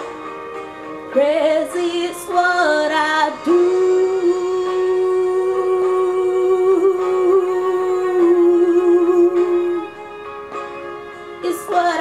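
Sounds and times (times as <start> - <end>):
soft backing music: 0.0 - 12.0.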